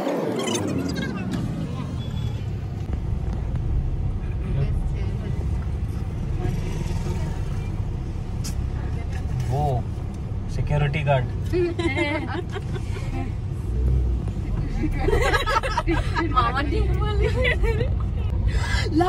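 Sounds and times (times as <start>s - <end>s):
car engine and road rumble: 0.0s - 19.0s
voices: 4.2s - 19.0s.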